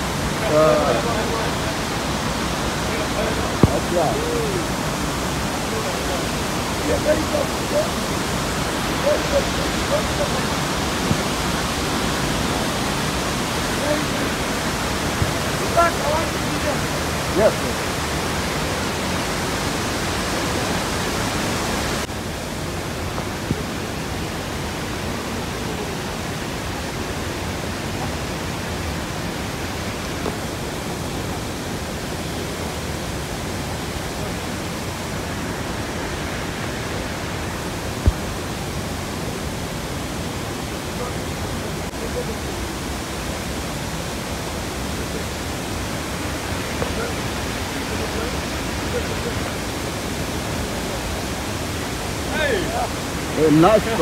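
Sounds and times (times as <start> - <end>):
waterfall rushing: 0.0 - 54.0.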